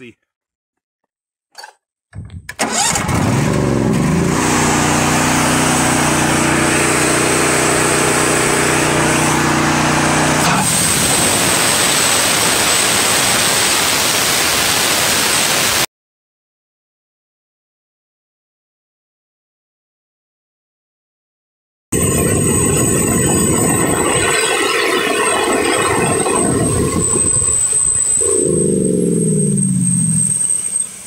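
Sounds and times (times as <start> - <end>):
sawmill engine starting and running: 2.5 - 15.8, 22.0 - 31.0
rushing noise with high whine: 10.3 - 15.9, 22.0 - 31.0.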